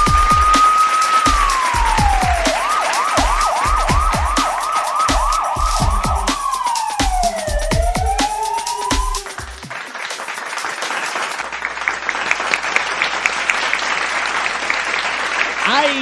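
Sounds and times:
siren wailing: 0.0s - 9.6s
music with kick-drum beat: 0.0s - 10.2s.

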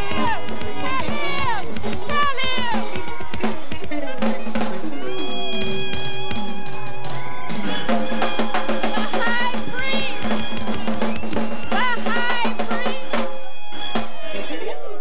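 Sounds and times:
drum kit snare and rimshots: 0.0s - 14.3s
rocksteady band playing: 0.0s - 15.0s.

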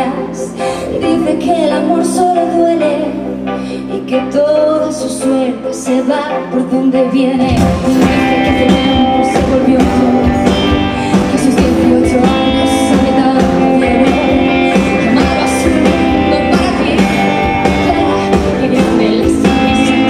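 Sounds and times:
rock band playing: 0.0s - 20.0s
woman singing: 0.0s - 20.0s.

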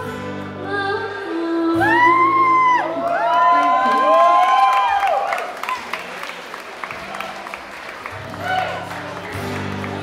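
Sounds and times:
audience applause: 3.0s - 10.0s.

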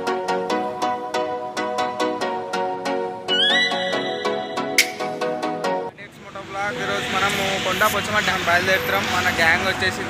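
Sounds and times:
road traffic: 0.0s - 10.0s
man talking: 5.9s - 10.0s.

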